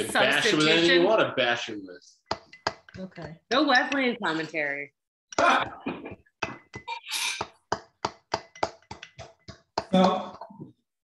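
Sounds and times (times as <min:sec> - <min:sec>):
wooden spoon tapping in glass: 0:07.7 - 0:09.9.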